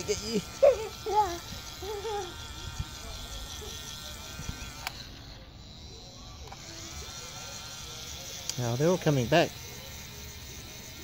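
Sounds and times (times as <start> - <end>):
small electric motor whirring: 0.0 - 11.0.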